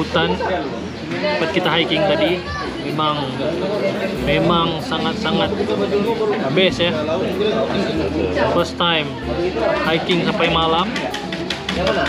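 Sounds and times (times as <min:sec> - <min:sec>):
people talking in a room: 0:00.0 - 0:12.0.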